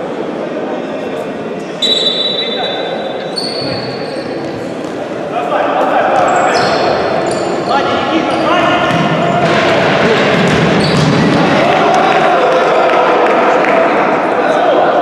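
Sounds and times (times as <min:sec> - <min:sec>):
shoes squeaking on court floor: 0:01.8 - 0:05.2, 0:06.2 - 0:09.5, 0:10.4 - 0:11.4.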